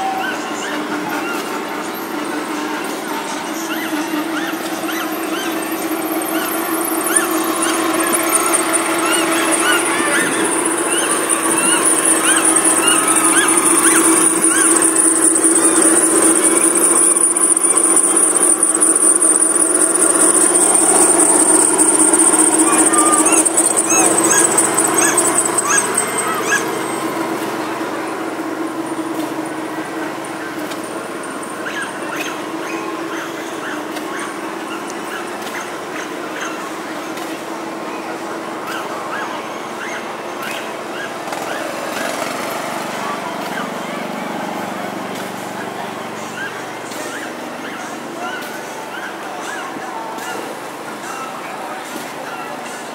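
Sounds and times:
animal whining calls: 3.5 - 35.6
high-pitched buzz: 4.0 - 33.0
steady low hum: 4.6 - 33.1.

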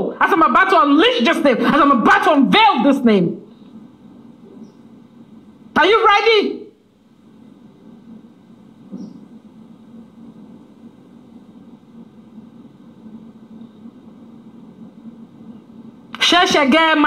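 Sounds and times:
low room hum: 0.0 - 17.0.

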